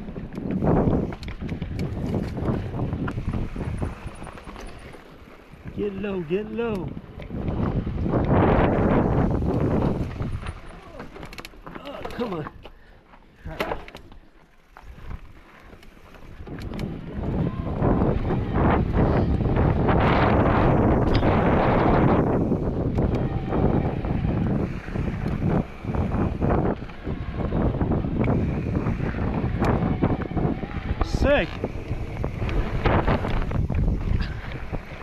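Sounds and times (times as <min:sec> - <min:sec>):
wind rushing over microphone: 0:00.0 - 0:11.4, 0:16.1 - 0:35.0
bike tyre and trail noise: 0:00.0 - 0:35.0.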